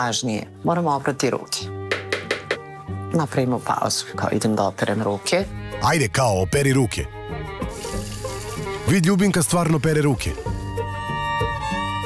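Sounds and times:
background music: 0.0s - 12.0s
kitchen tap running: 7.6s - 8.9s.

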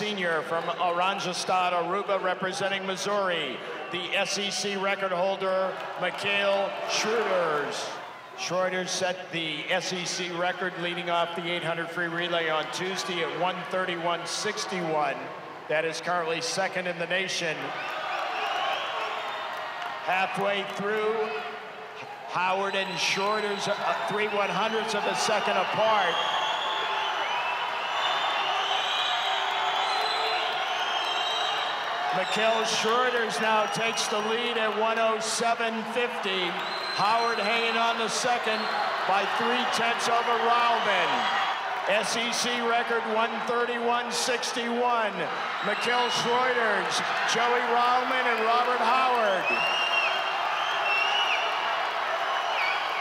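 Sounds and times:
crowd cheering: 0.0s - 53.0s
high whoops and shrill calls: 25.6s - 31.9s, 49.4s - 51.6s
shouts and whoops: 36.2s - 44.1s, 45.0s - 53.0s.

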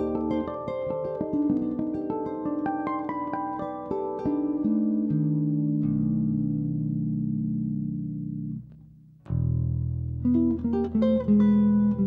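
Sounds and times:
bass: 0.0s - 12.0s
low chord plucked and ringing: 0.0s - 12.0s
slow jazz guitar: 0.0s - 12.0s.

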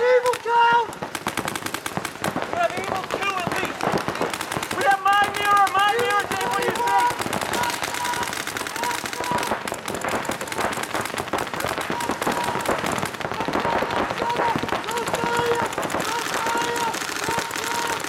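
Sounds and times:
people shouting: 0.0s - 1.0s, 2.4s - 18.0s
paintball markers firing: 0.0s - 18.0s.

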